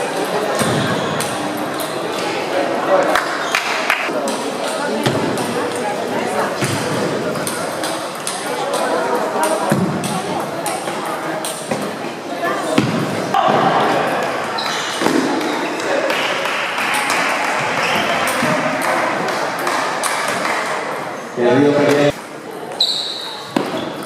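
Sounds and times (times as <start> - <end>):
chatter of voices in hall: 0.0 - 24.0
table tennis balls clicking: 7.4 - 11.7.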